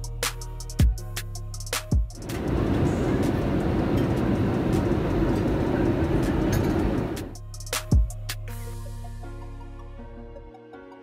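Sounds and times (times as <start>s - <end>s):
faint music: 0.0s - 8.3s
airplane cabin roar: 2.2s - 7.4s.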